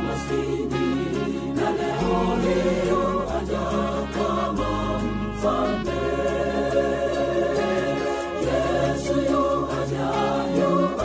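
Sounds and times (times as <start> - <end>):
bass line: 0.0 - 11.0
gospel choir singing: 0.0 - 11.0.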